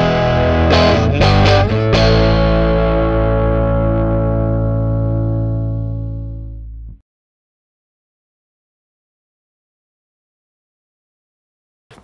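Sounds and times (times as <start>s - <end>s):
distorted electric guitar chords: 0.0s - 7.0s.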